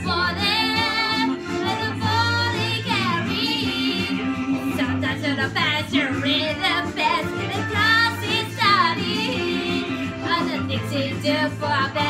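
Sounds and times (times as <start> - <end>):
instrumental chords: 0.0 - 12.0
steady bass notes: 0.0 - 12.0.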